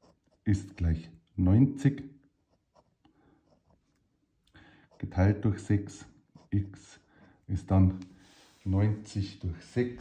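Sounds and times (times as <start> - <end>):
pen scratching on paper: 0.0 - 1.0, 2.3 - 4.2, 4.8 - 8.0.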